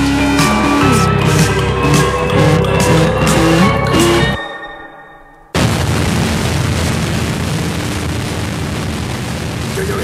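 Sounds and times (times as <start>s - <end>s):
rock music: 0.0s - 5.0s
dense distorted noise with heavy bass: 5.6s - 10.0s.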